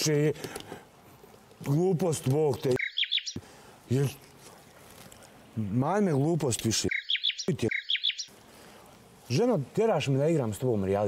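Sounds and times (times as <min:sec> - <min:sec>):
bird chirps sound effect: 0:02.8 - 0:03.4, 0:06.9 - 0:08.3.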